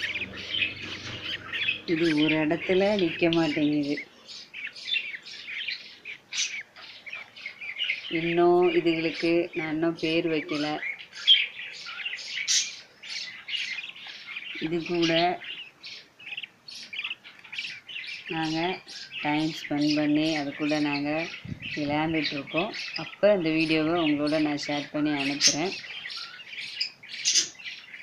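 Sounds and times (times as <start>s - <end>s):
bird chicks high calls: 0.0s - 28.0s.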